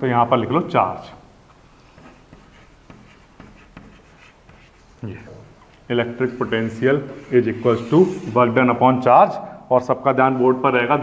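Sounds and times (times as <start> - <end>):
chalk scratching on chalkboard: 1.8 - 5.0, 6.3 - 8.5.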